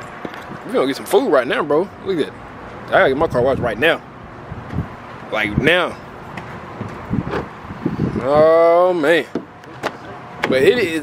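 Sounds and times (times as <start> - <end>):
wind on microphone: 3.2 - 6.0, 6.6 - 8.6.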